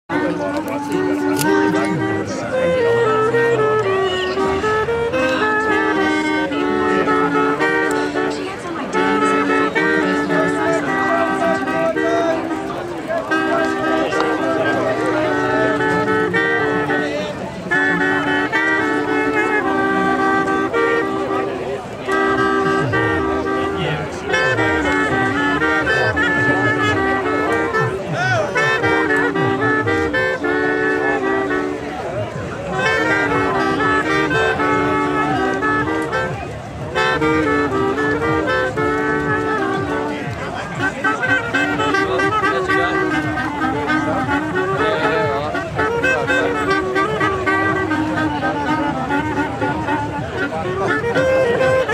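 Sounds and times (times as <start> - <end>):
wind instrument ensemble melody: 0.1 - 51.9.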